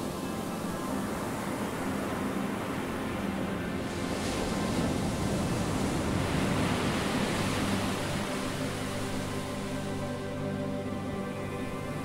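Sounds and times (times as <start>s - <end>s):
ocean waves breaking: 0.0s - 10.4s
faint background music: 0.0s - 12.0s.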